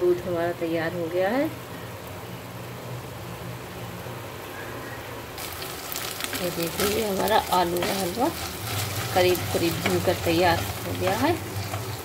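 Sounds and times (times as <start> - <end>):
potato frying sizzle: 0.0 - 4.4, 5.4 - 12.0
gas burner humming and hissing: 0.0 - 12.0.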